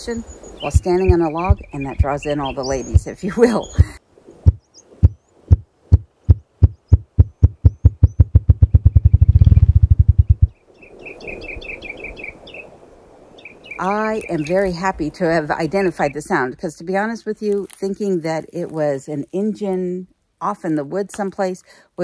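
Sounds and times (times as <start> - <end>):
small bird chirping: 6.6 - 12.7.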